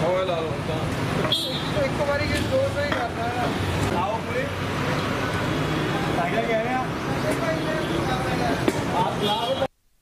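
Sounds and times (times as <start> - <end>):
engines and road traffic hum: 0.0 - 9.8.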